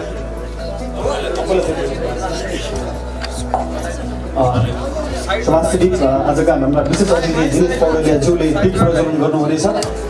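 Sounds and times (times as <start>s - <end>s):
faint background music: 0.0s - 10.0s
room chatter: 0.0s - 10.0s.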